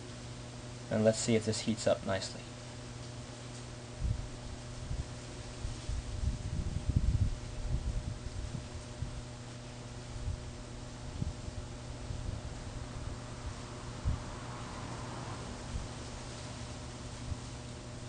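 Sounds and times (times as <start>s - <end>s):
low electrical hum: 0.0s - 18.0s.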